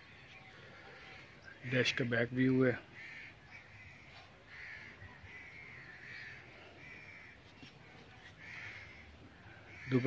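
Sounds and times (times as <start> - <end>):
faint caw-like bird calls: 0.0 - 10.0.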